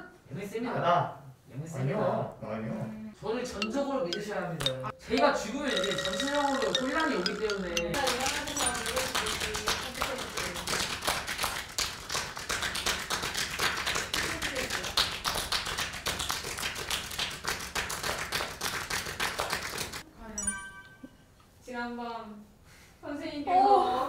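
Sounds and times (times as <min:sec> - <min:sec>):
rapid tapping clicks: 0:03.6 - 0:09.7.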